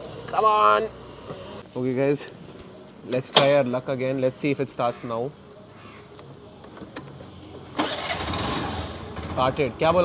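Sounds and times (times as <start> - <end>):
scooter engine starting and running: 7.7 - 10.0.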